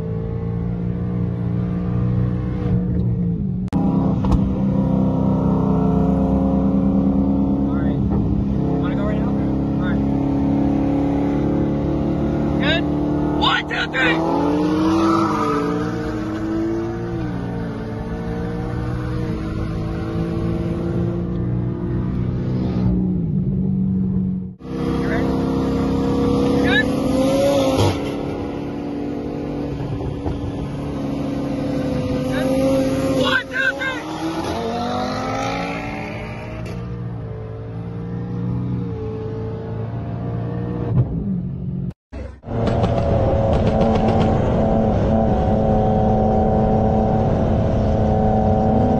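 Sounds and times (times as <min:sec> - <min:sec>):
car engine accelerating hard: 0:00.0 - 0:48.9.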